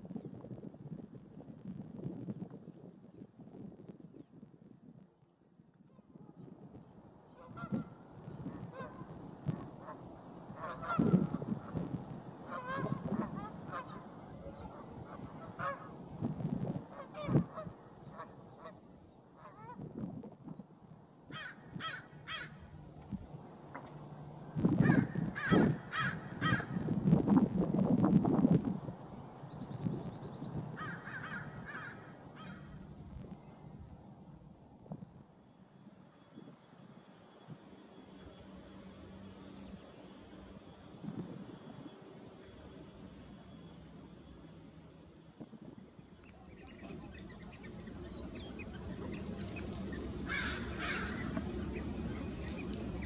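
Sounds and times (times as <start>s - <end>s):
waterfowl calling: 5.9s - 16.1s, 16.8s - 19.8s, 21.3s - 22.8s, 24.8s - 26.9s, 30.8s - 33.7s, 46.2s - 53.0s.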